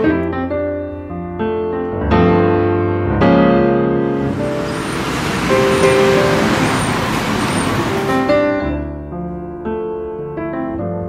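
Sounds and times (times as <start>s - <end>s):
faint piano notes: 0.0s - 11.0s
cars passing: 4.0s - 8.4s.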